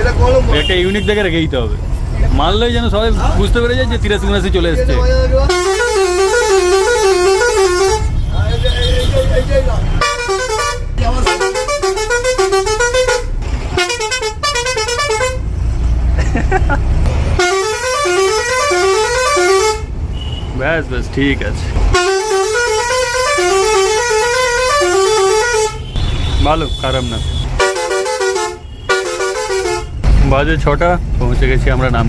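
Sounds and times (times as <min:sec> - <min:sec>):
bus engine running: 0:00.0 - 0:26.4
musical air horn warbling: 0:05.4 - 0:09.1, 0:10.0 - 0:15.4, 0:17.4 - 0:20.4, 0:21.9 - 0:26.1, 0:27.6 - 0:30.0.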